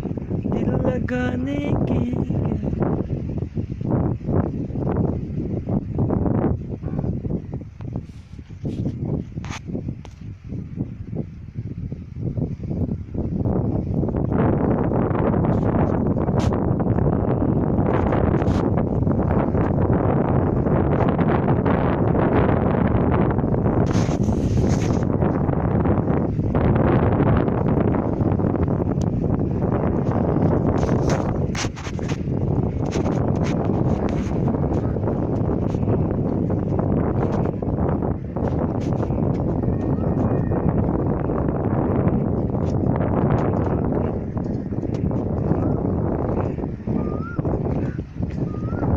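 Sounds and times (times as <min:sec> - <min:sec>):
wind buffeting microphone: 0:00.0 - 0:48.9
brief crackles: 0:23.8 - 0:25.1, 0:30.8 - 0:34.9.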